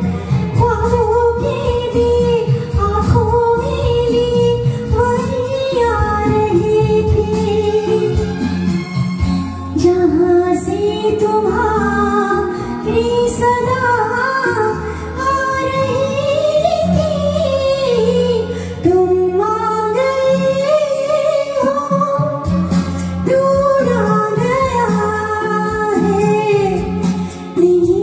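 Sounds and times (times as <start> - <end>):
instrumental backing track: 0.0 - 28.0
woman singing into microphone: 0.0 - 28.0.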